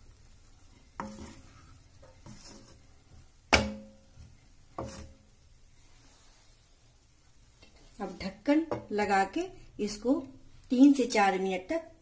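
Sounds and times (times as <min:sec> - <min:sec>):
soft stirring: 0:00.0 - 0:10.8
spatula knocking metal pan: 0:03.5 - 0:04.1.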